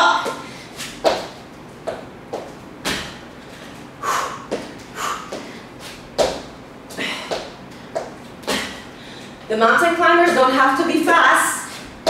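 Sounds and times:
sneakers thudding and scuffing on floor: 0:00.8 - 0:03.2, 0:04.5 - 0:06.6.

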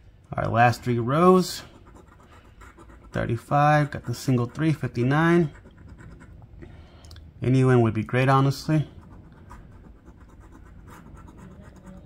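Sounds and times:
coin scratching lottery ticket: 0:00.7 - 0:06.4, 0:08.8 - 0:12.0.

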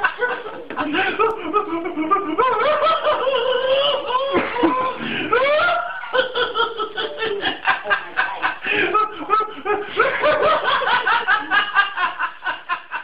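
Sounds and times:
person laughing hard: 0:00.0 - 0:13.0.

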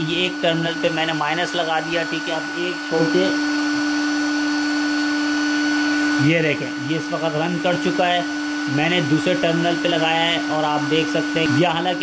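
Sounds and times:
blower fan with low whine: 0:00.0 - 0:12.0.

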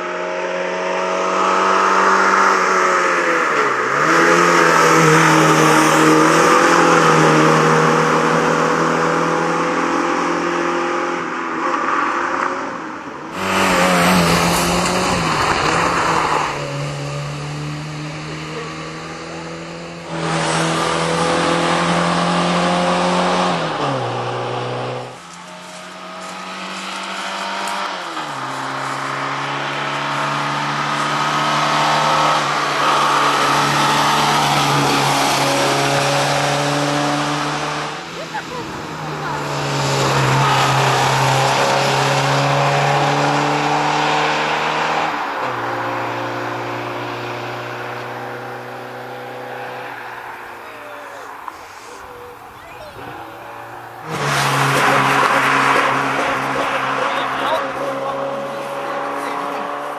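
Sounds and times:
rally car engine revving: 0:00.0 - 0:59.9.

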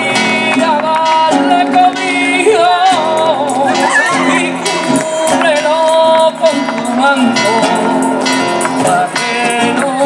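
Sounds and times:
hand-clapping: 0:00.0 - 0:10.0
person singing ornamented melody: 0:00.0 - 0:10.0
strummed acoustic guitar: 0:00.0 - 0:10.0.

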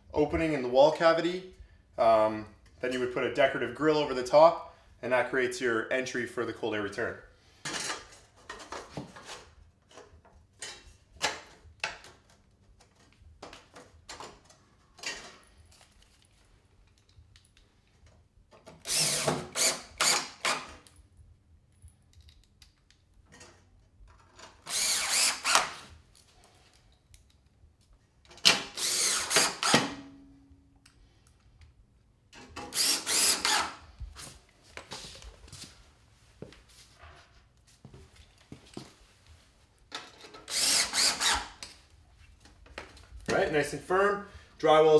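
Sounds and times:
cordless drill bursts: 0:18.8 - 0:20.7, 0:24.6 - 0:25.8, 0:28.5 - 0:30.0, 0:32.7 - 0:33.8, 0:40.5 - 0:41.6.

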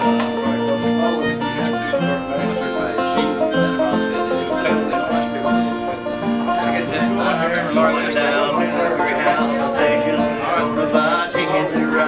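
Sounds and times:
banjo picking: 0:00.0 - 0:12.0
harmonica notes: 0:00.0 - 0:12.0
strummed acoustic guitar: 0:00.0 - 0:12.0.

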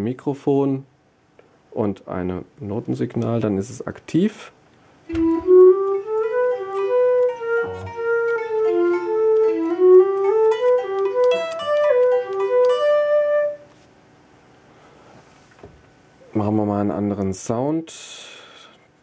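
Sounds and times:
sampled instrument melody: 0:05.1 - 0:13.7.

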